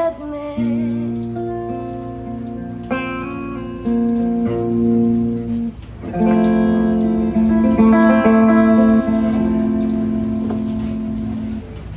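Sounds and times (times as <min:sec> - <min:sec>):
guitar chord ringing: 0:00.6 - 0:11.9.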